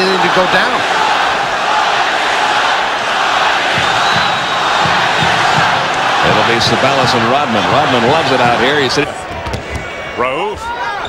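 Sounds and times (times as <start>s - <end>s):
crowd din: 0.0s - 11.0s.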